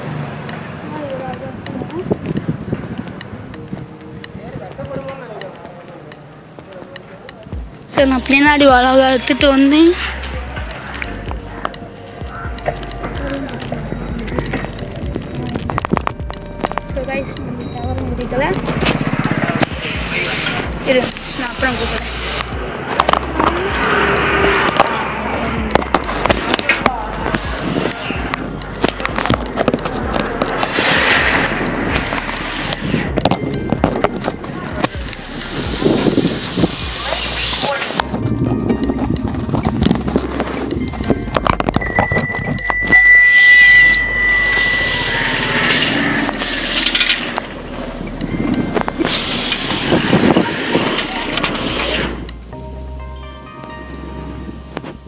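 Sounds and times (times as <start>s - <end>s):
street noise: 0.0s - 55.0s
bicycle bell ringing: 40.2s - 49.1s.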